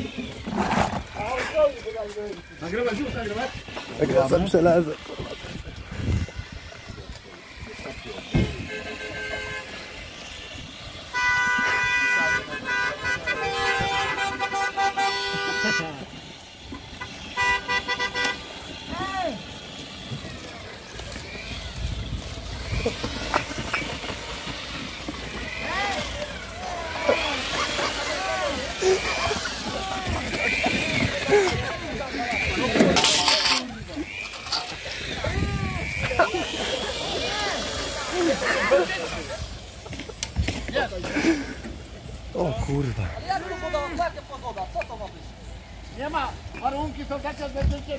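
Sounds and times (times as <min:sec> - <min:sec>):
excited voices talking and shouting: 0:00.0 - 0:47.9
car horn honking: 0:08.3 - 0:10.4, 0:11.0 - 0:18.8.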